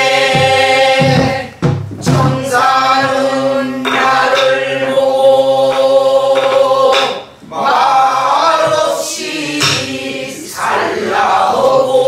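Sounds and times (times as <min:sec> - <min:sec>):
barrel drum strokes: 0:00.0 - 0:04.8
men singing in unison: 0:00.0 - 0:12.0.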